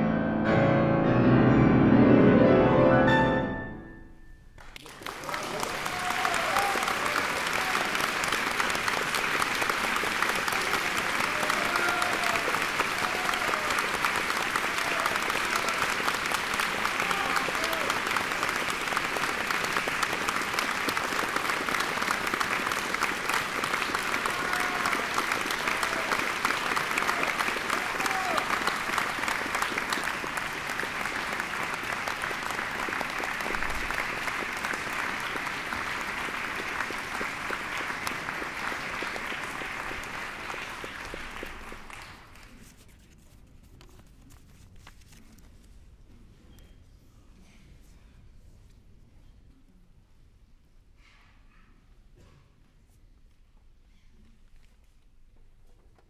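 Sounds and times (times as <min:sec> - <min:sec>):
audience applauding: 0:04.6 - 0:42.8.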